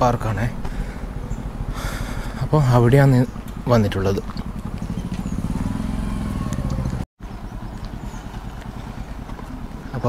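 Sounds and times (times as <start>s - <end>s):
small motorbike engine running: 0.6s - 9.8s.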